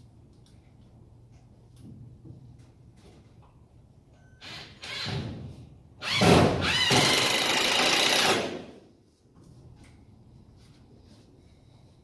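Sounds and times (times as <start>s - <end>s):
power drill whining: 6.0s - 8.6s.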